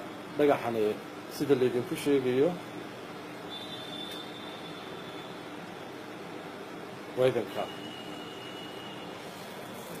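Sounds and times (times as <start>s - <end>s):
room noise hiss: 0.0s - 10.0s
faint high whine: 3.4s - 10.0s.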